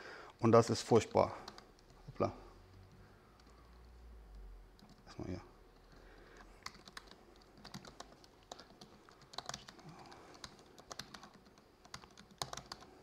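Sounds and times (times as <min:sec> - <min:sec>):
typing on laptop keyboard: 0:00.9 - 0:13.0.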